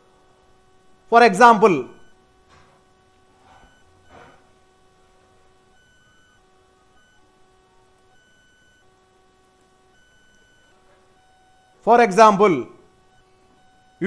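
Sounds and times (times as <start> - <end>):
thin electrical hum: 0.0 - 14.0.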